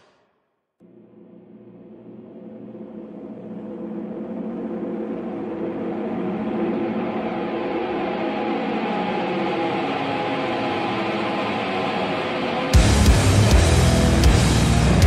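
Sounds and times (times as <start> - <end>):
droning wall of noise: 0.8 - 15.0.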